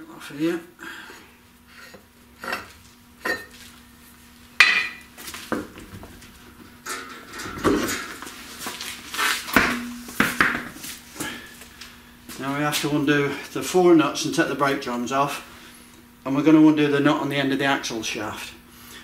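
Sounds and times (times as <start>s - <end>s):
metal clanks and knocks: 6.8s - 8.3s, 9.5s - 10.7s.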